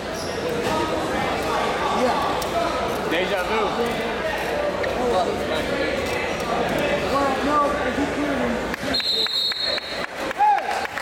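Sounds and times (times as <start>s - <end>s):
high whistle-like tone: 9.0s - 10.0s
loud shout: 10.3s - 11.0s.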